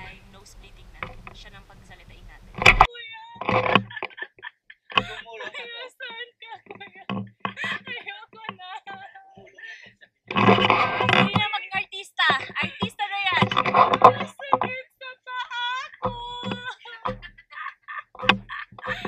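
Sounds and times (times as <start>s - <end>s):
women talking: 0.0s - 19.0s
women laughing: 2.9s - 19.0s.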